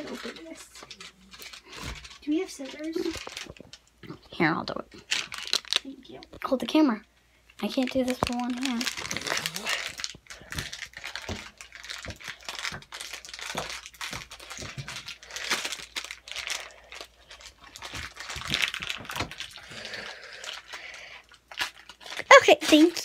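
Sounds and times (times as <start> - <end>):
foil pouch crinkling: 0.0 - 3.9, 5.0 - 6.5, 7.6 - 23.0.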